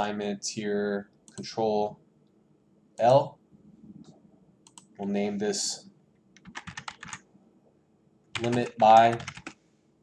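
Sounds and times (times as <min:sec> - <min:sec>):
keyboard typing: 0:04.6 - 0:04.9, 0:06.4 - 0:07.2, 0:08.3 - 0:09.6.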